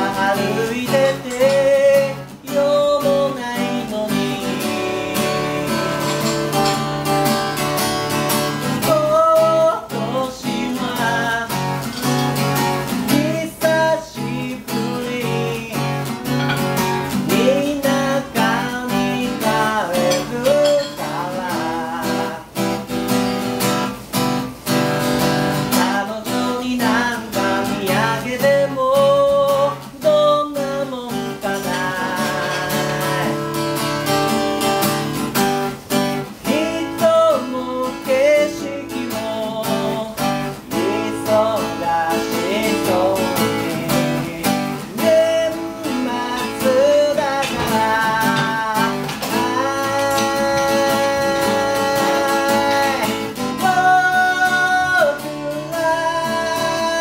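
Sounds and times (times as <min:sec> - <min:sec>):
men singing: 0:00.0 - 0:07.0, 0:08.5 - 0:22.8, 0:25.4 - 0:33.9, 0:36.4 - 0:57.0
acoustic guitar strumming: 0:00.0 - 0:57.0.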